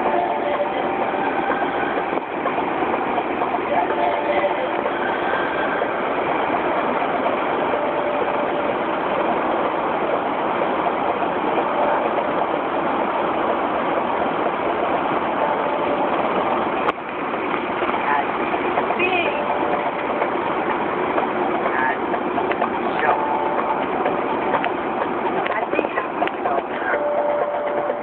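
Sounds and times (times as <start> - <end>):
car cabin road and engine noise: 0.0 - 28.0.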